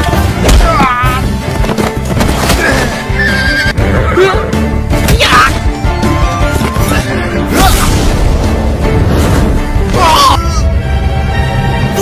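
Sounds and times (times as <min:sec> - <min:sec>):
background music: 0:00.0 - 0:12.0
horse neighing: 0:03.2 - 0:04.5.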